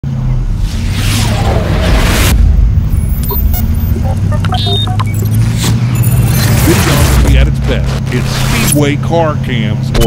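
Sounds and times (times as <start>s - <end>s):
whoosh and boom: 0.4s - 4.1s
short electronic blips: 2.9s - 8.8s.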